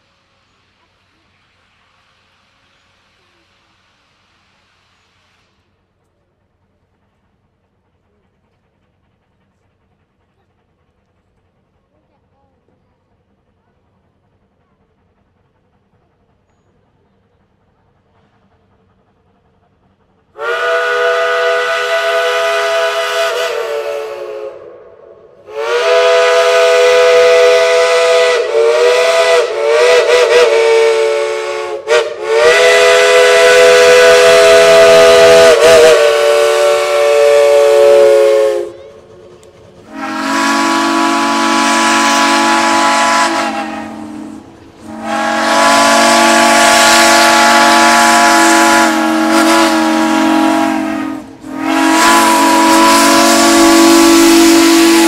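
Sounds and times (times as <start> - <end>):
steam locomotive whistle blasts: 20.4 - 39.1, 39.8 - 55.0.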